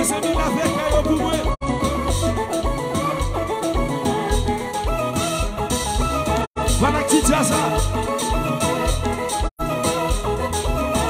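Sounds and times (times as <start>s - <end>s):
electric bass guitar: 0.0s - 11.0s
keyboard melody: 0.0s - 11.0s
steady beat: 0.0s - 11.0s.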